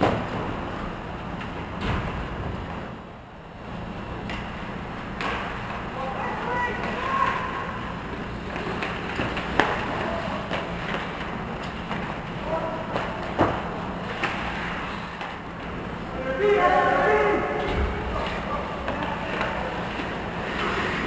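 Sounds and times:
steady low hum: 0:00.0 - 0:21.0
players shouting: 0:05.9 - 0:08.0, 0:16.0 - 0:20.3
skates scraping ice: 0:06.6 - 0:15.9, 0:18.2 - 0:21.0.

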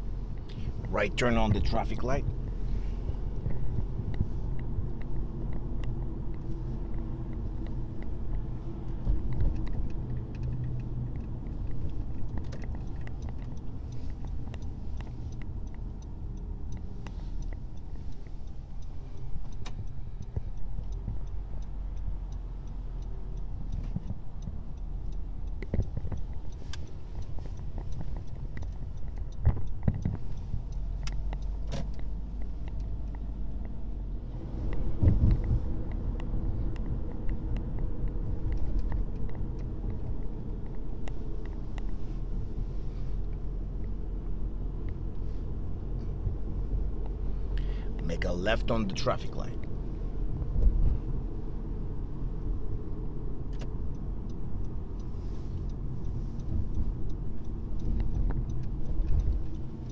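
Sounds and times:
car cabin road rumble: 0:00.0 - 0:59.9.

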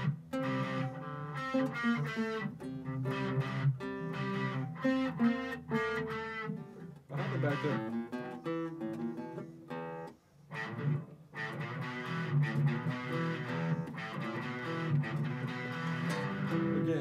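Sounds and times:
acoustic guitar: 0:00.0 - 0:17.0
electric guitar: 0:00.0 - 0:17.0.

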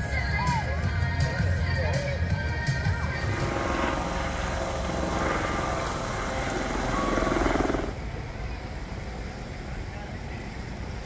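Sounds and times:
outdoor background noise: 0:00.0 - 0:11.0
steady mechanical drone: 0:03.0 - 0:11.0.

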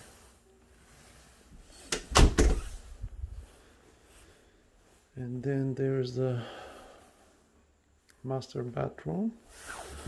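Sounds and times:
closet door shutting knocks: 0:01.9 - 0:02.7.

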